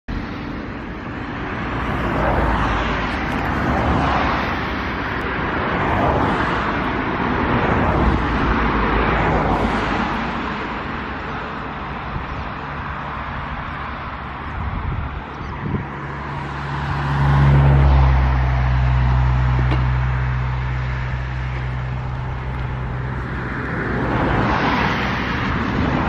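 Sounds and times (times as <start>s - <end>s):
cars passing on motorway: 0.1s - 26.0s.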